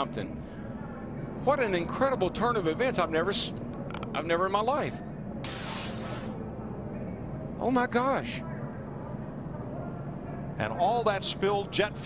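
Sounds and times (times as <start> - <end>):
burst of hissing: 5.4 - 6.4.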